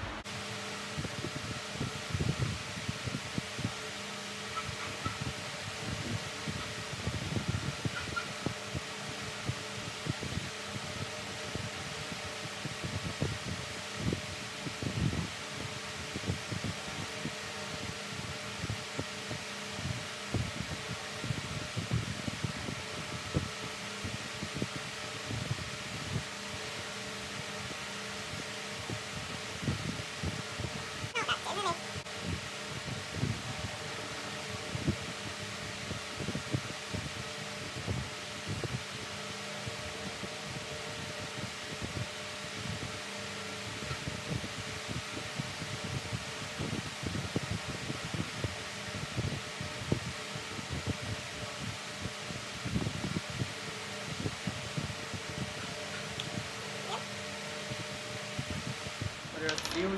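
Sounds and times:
electric fan whirring: 0:00.0 - 0:59.9.

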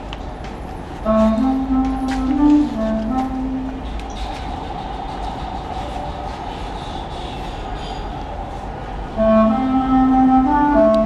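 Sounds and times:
breathy rushing air: 0:03.8 - 0:09.3
wooden flute note: 0:09.1 - 0:11.0.

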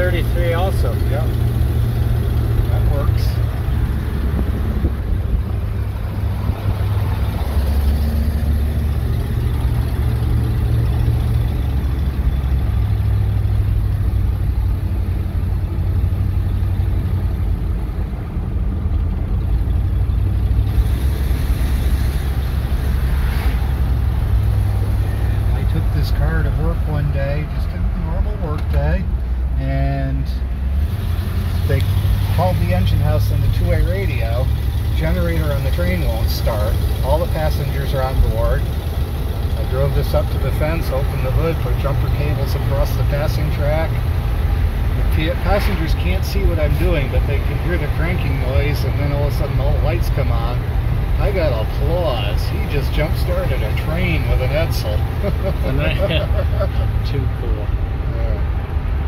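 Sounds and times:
car engine and road noise drone: 0:00.0 - 0:59.0.

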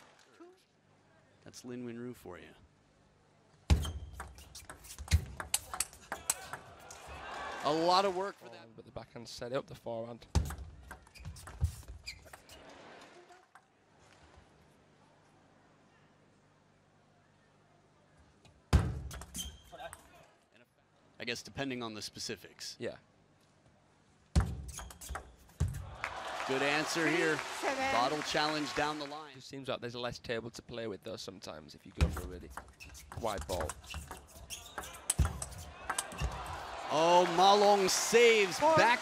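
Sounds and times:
ping pong ball clicks: 0:04.2 - 0:06.7.

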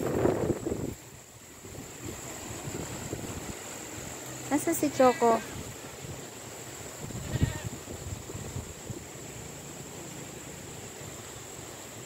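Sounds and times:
goat bleating: 0:04.9 - 0:05.6, 0:07.2 - 0:07.7.

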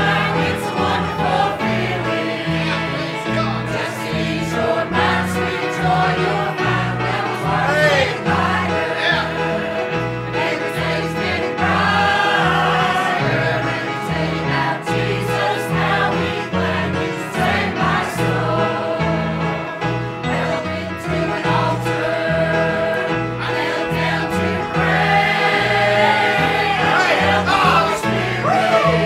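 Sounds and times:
choir singing gospel song: 0:00.0 - 0:29.0
instrumental accompaniment with bass: 0:00.0 - 0:29.0.

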